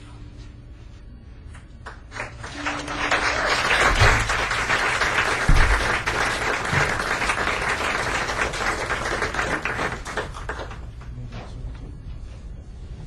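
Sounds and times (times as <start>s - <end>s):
audience applauding: 1.8s - 11.1s
low thump: 5.5s - 5.8s.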